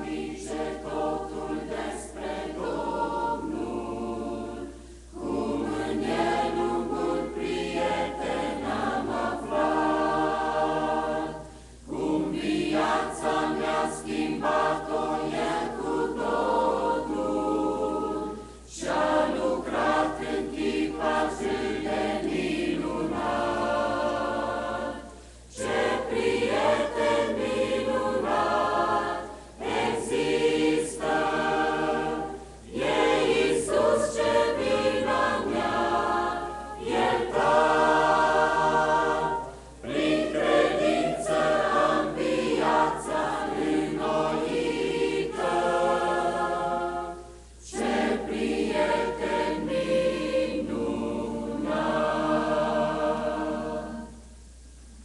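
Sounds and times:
choir singing a hymn: 0.0s - 54.6s.

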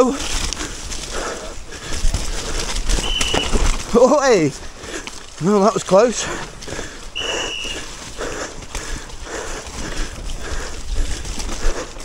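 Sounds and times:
bike rattling over roots: 0.0s - 12.0s
bike tyres through wet mud: 0.0s - 12.0s
high-pitched whistle: 3.0s - 3.6s, 7.2s - 7.8s.

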